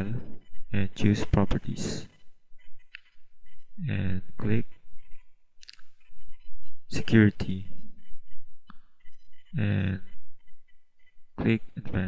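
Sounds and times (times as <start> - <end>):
man making hesitant sounds: 0.0 - 2.1, 3.8 - 4.7, 9.5 - 10.1, 11.4 - 12.0.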